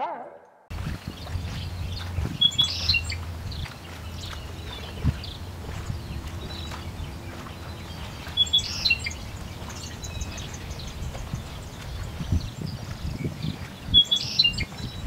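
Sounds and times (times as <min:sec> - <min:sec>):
birds chirping: 0:00.0 - 0:15.0
low rumble: 0:00.7 - 0:08.4.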